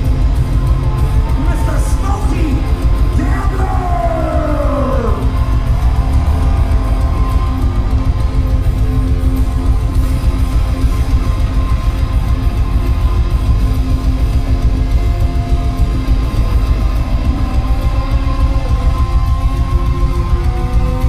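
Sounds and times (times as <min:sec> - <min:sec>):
electric guitars holding notes: 0:00.0 - 0:21.0
rock band playing live: 0:00.0 - 0:21.0.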